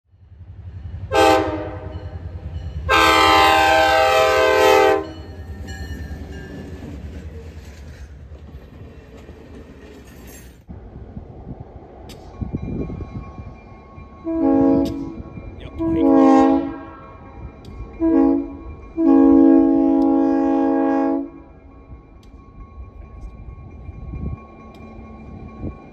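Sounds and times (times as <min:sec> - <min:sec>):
locomotive horn blasts: 0:01.1 - 0:02.0, 0:02.9 - 0:05.3, 0:14.2 - 0:17.1, 0:17.9 - 0:21.5.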